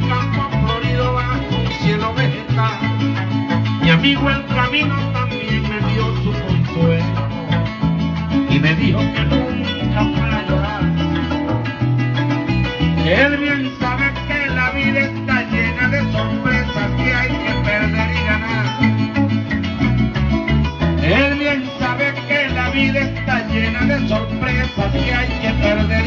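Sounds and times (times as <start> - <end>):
plucked strings: 0.0 - 26.0
steady bass line: 0.0 - 26.0.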